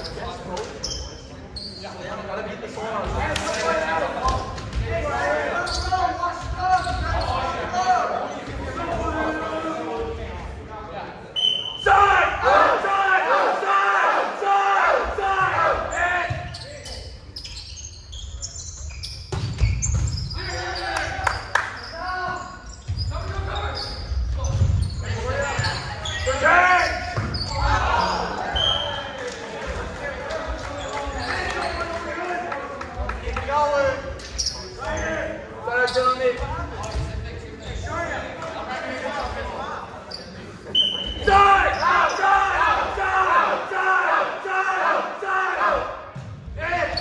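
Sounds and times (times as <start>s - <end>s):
ball bouncing on hardwood court: 19.3s - 20.3s.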